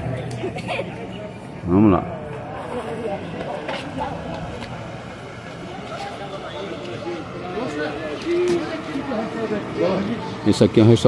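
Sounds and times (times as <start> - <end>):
indistinct voices of passers-by: 0.0 - 11.0
outdoor street bustle: 0.0 - 11.0.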